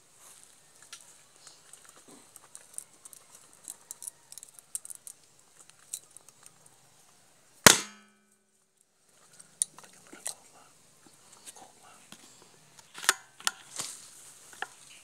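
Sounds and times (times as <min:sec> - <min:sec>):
sharp crack with metallic ring: 0:07.6 - 0:08.4
footsteps through dry leaves: 0:13.6 - 0:14.5.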